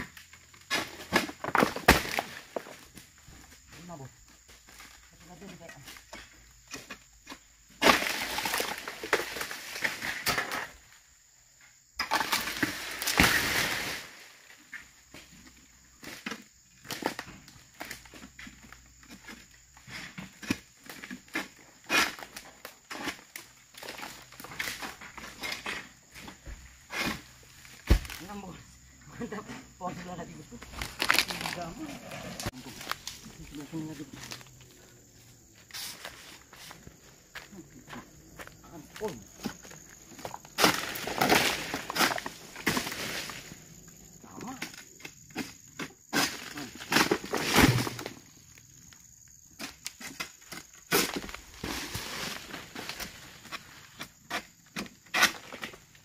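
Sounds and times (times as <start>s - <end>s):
palm frond crashing through foliage: 12.1s - 14.5s, 30.7s - 33.1s, 40.6s - 43.5s.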